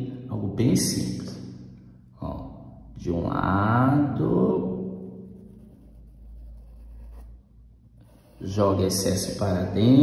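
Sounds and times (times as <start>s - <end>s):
low steady hum: 0.0s - 10.0s
paintbrush brushing on cloth: 5.2s - 7.4s, 8.0s - 8.6s.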